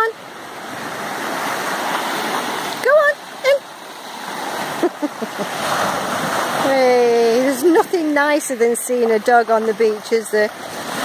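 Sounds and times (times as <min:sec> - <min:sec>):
waves washing on shingle beach: 0:00.0 - 0:11.0
person laughing: 0:04.7 - 0:05.6.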